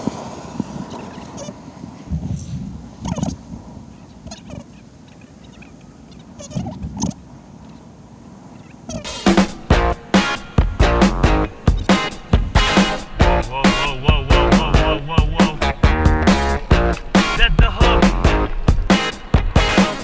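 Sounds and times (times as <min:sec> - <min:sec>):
low outdoor noise: 0:00.0 - 0:20.0
short bird calls: 0:03.0 - 0:10.6, 0:11.4 - 0:14.0
background music with steady beat: 0:09.1 - 0:20.0.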